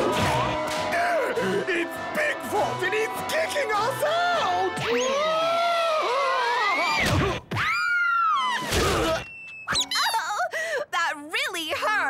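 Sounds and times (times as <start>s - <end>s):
cartoon crash: 8.4s - 10.0s.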